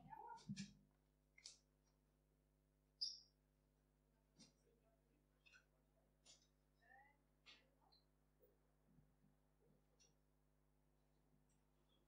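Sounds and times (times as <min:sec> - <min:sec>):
faint distant voice: 0:06.8 - 0:08.0.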